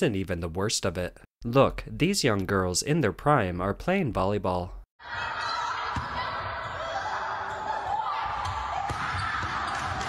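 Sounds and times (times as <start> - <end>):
volleyball being hit: 7.4 - 10.0.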